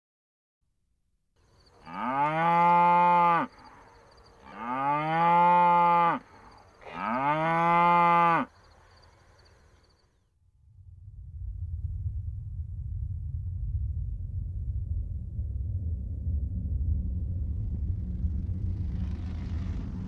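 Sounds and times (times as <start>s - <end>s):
cow mooing: 1.8s - 3.7s, 4.4s - 8.6s.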